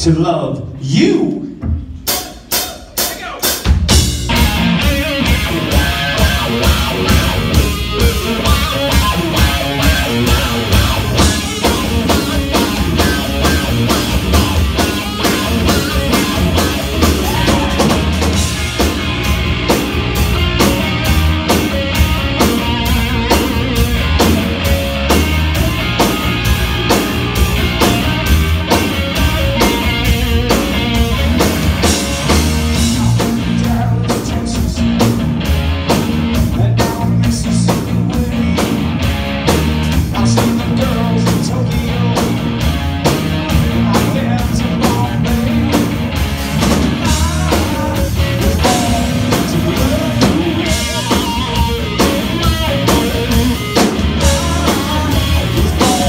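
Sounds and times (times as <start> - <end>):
drum kit beat: 1.1 - 56.0
electric bass: 3.7 - 56.0
electric guitar: 3.7 - 56.0.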